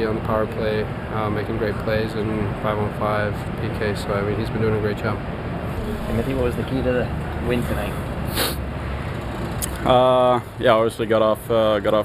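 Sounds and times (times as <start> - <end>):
low room rumble: 5.6 - 8.2
man speaking: 5.8 - 8.0
short hiss: 8.3 - 8.6.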